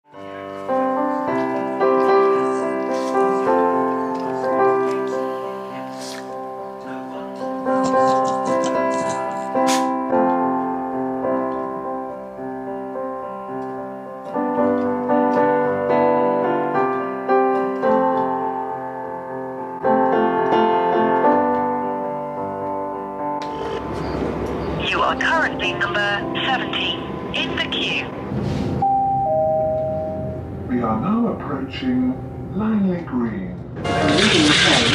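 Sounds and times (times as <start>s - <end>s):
slow solo piano: 0.1s - 24.8s
mix of voices: 24.8s - 28.2s.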